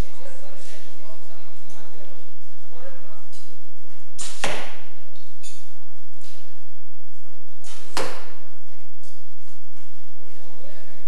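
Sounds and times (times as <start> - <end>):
arrow striking target: 4.2 - 5.6, 7.6 - 8.5.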